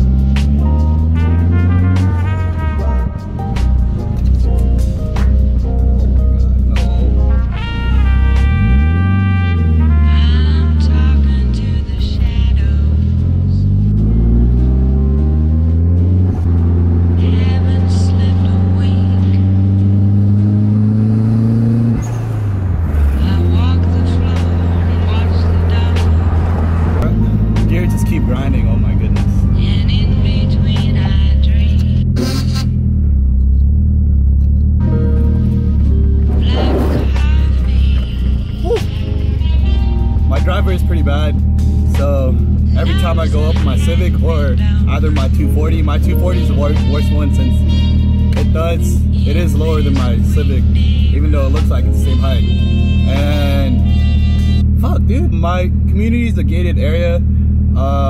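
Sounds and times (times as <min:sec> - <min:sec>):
background music: 0:00.0 - 0:32.6, 0:34.8 - 0:55.7
car engine accelerating: 0:00.0 - 0:58.0.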